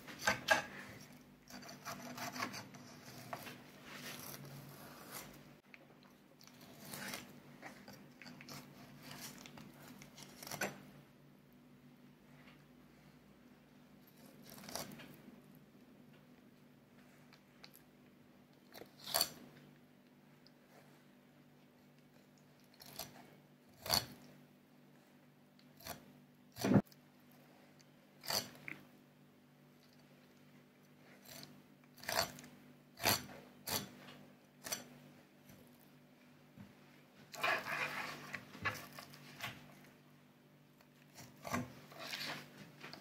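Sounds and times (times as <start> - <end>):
knife scraping along fish bones: 0.0 - 5.4, 6.4 - 10.9, 14.0 - 15.1, 18.7 - 19.4, 22.6 - 24.3, 25.8 - 26.9, 28.2 - 28.8, 31.0 - 34.9, 37.3 - 39.7, 41.0 - 43.0
knife crunching through fish bones: 31.2 - 34.0.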